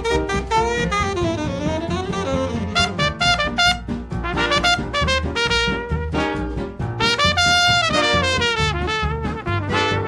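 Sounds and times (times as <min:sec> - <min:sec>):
horn line gliding: 0:00.0 - 0:10.0
swing jazz band playing: 0:00.0 - 0:10.0.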